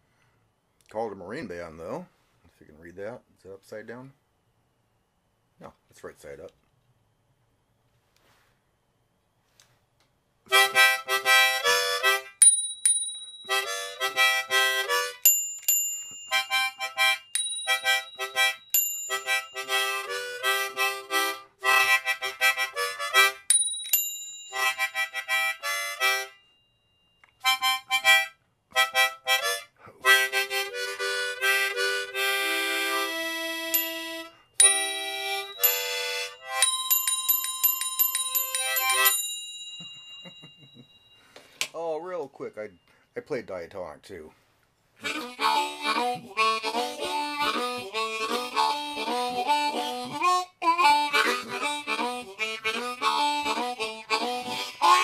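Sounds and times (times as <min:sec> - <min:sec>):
harmonica chords: 0:10.5 - 0:12.4, 0:13.4 - 0:15.4, 0:16.0 - 0:23.5, 0:24.5 - 0:26.4, 0:27.3 - 0:39.3, 0:45.0 - 0:55.0
bells ringing: 0:12.4 - 0:20.3, 0:23.5 - 0:27.1, 0:33.7 - 0:41.4.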